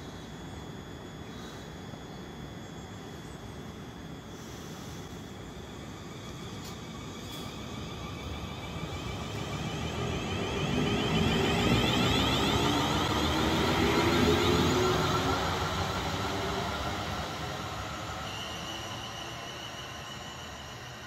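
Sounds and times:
traction motor whine: 0:05.8 - 0:21.0.

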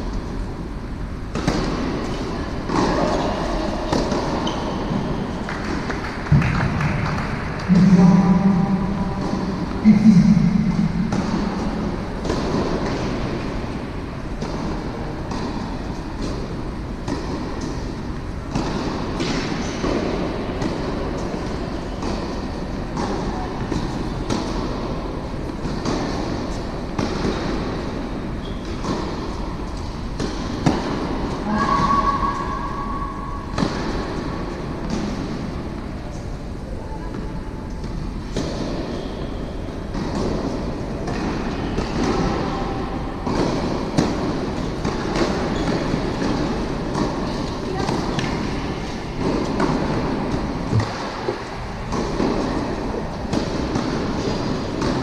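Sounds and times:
tennis racket hitting ball: 0:01.3 - 0:35.9, 0:37.8 - 0:55.0
steady low rumble: 0:06.2 - 0:13.7.

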